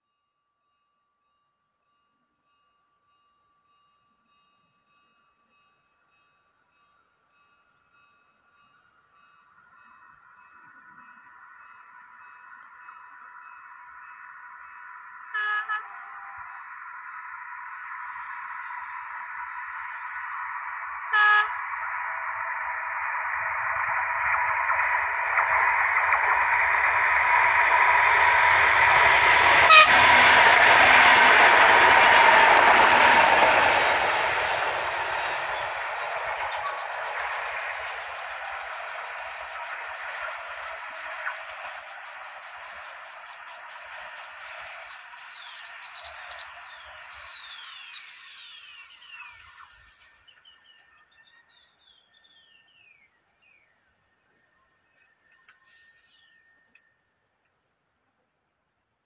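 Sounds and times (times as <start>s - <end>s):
passing train rumble: 4.3s - 53.2s
train horn blasts: 15.2s - 16.6s, 21.0s - 21.8s, 28.0s - 33.7s.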